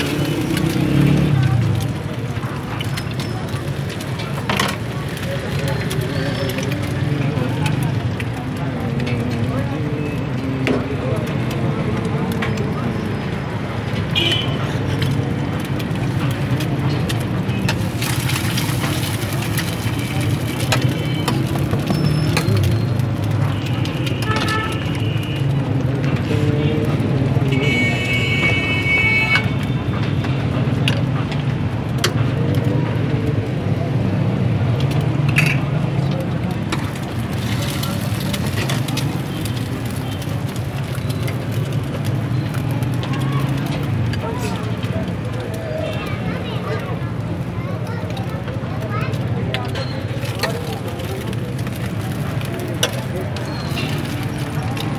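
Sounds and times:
traffic hum: 0:00.0 - 0:54.9.

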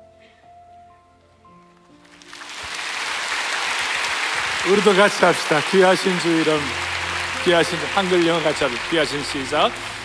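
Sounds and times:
congregation applause: 0:02.1 - 0:10.0
sustained instrumental chord: 0:04.7 - 0:10.0.

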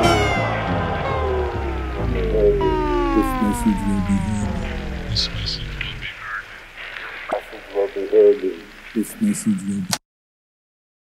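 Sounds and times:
person speaking: 0:02.0 - 0:10.0.

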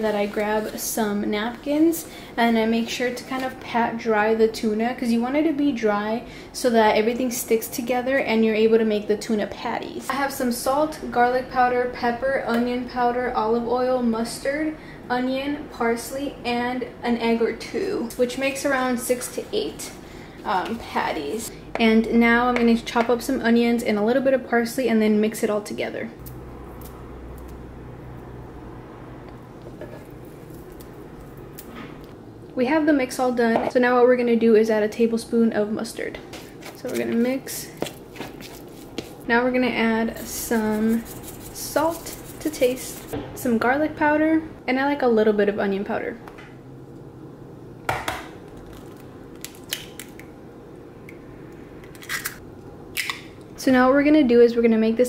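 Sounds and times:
low room hum: 0:00.0 - 0:55.0
egg cracked into bowl: 0:51.9 - 0:53.3.

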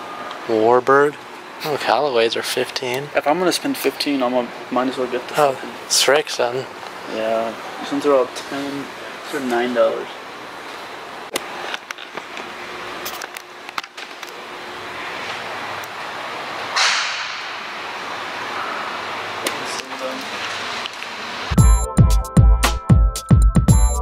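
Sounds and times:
shop room noise hiss: 0:00.0 - 0:21.5
electronic music with heavy beat: 0:21.5 - 0:24.0.

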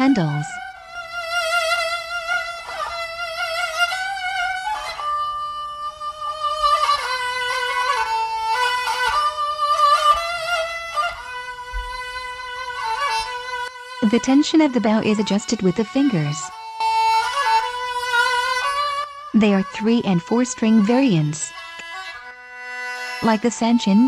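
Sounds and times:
solo bowed fiddle melody: 0:00.0 - 0:24.0.

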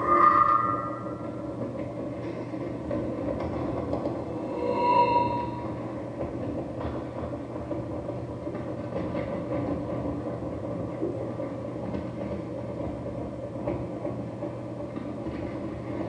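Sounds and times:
ringing tone: 0:00.0 - 0:01.5, 0:04.3 - 0:05.8
low hum: 0:00.0 - 0:07.5
rumbling drone: 0:00.0 - 0:08.4.

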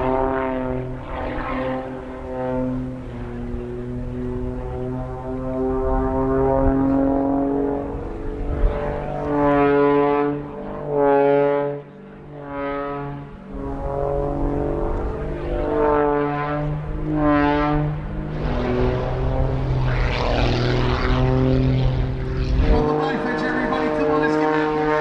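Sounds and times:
propeller plane engine droning: 0:00.0 - 0:25.0.

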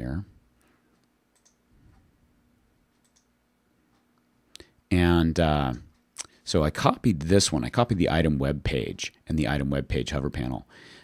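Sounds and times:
computer mouse clicks: 0:01.0 - 0:02.0, 0:02.9 - 0:03.3.

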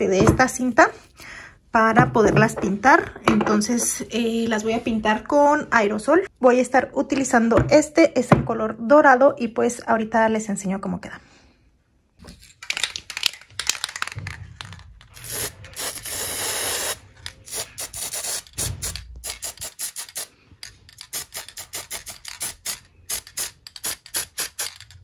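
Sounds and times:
spray paint can hissing: 0:15.2 - 0:20.3, 0:21.0 - 0:24.8.

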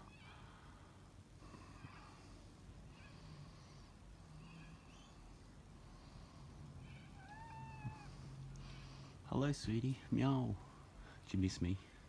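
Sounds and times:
cat meowing: 0:06.8 - 0:08.2.

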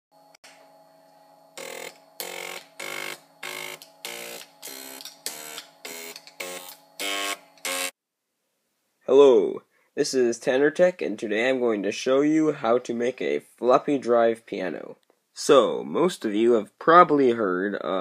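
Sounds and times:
floppy drive motor buzzing a tune: 0:01.5 - 0:08.0.

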